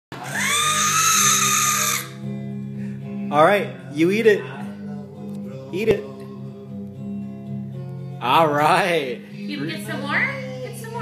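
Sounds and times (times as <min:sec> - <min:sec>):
baby squealing: 0:00.2 - 0:02.2
faint music: 0:00.2 - 0:11.0.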